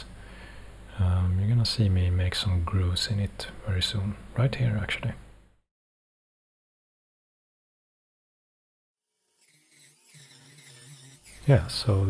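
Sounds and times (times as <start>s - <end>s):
rotary tool cutting wood: 9.1s - 12.0s.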